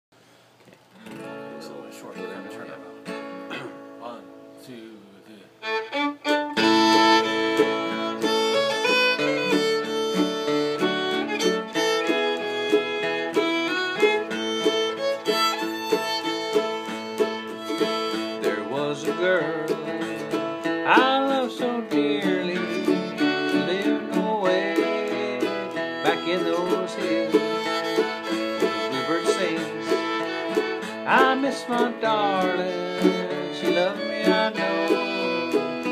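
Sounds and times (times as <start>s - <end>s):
acoustic guitar: 0.2s - 35.9s
fiddle: 5.6s - 35.9s.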